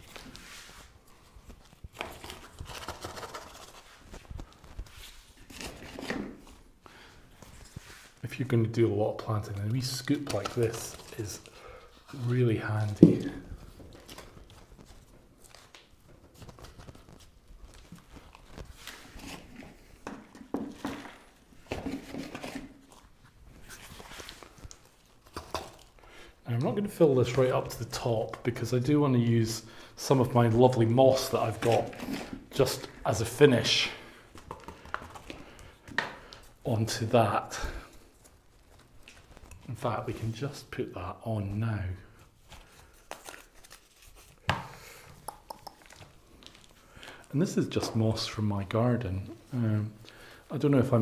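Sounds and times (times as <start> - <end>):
scoop taps and clicks: 45.2 - 46.0.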